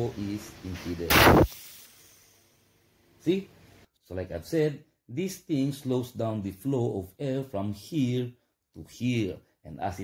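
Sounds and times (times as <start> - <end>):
compressed air blasting and hissing: 1.0 - 2.6.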